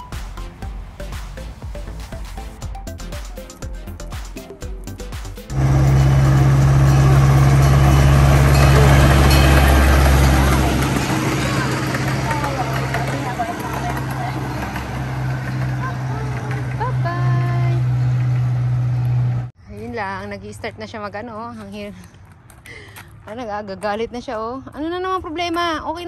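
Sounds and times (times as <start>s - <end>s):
music: 0.0s - 14.8s
miniature train engine humming: 5.5s - 19.5s
faint voices: 8.6s - 17.5s.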